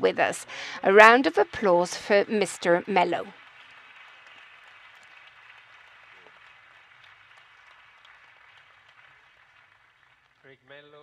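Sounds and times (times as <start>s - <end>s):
faint audience applause: 0.4s - 11.0s.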